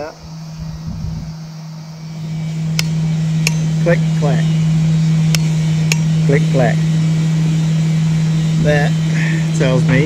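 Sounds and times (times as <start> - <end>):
steady low hum: 0.0 - 10.0
torque wrench clicking: 5.3 - 6.1.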